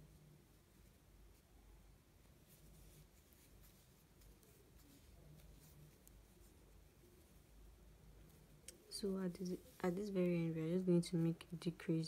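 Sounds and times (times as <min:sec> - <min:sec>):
crochet hook scratching yarn: 0:02.2 - 0:11.9.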